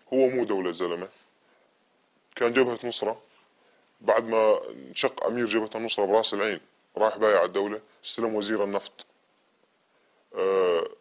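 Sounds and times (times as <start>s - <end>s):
man saying eh: 10.3s - 11.0s.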